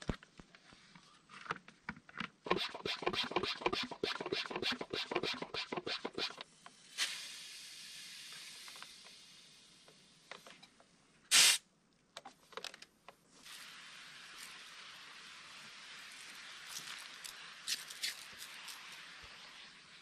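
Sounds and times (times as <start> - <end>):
sprayer pump strokes: 2.5 - 6.4, 16.0 - 19.4
pressurised sprayer hissing: 2.5 - 9.5.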